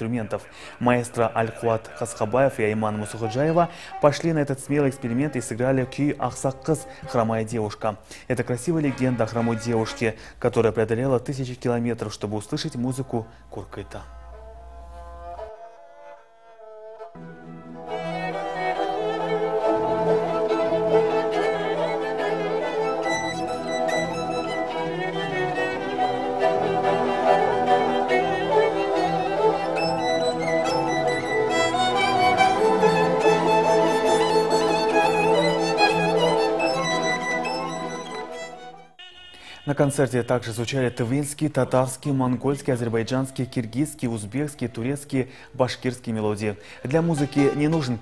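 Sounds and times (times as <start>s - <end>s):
violin and kobyz melody: 2.8s - 10.3s, 13.6s - 44.9s, 46.9s - 48.0s
folk instrument orchestra: 8.5s - 10.2s, 13.8s - 39.6s, 46.9s - 48.0s.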